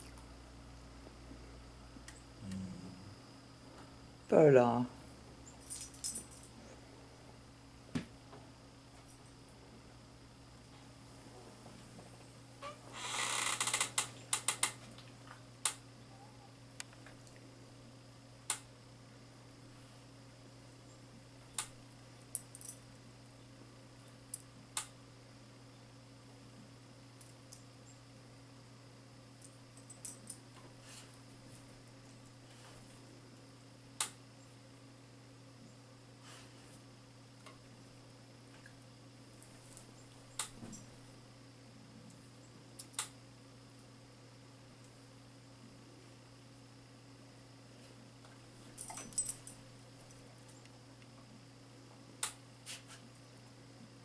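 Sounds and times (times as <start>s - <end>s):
faint low hum: 0.0s - 54.0s.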